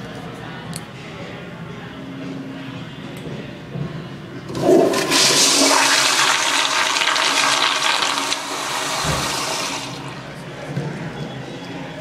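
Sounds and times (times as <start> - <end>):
toilet flushing: 4.5 - 10.3.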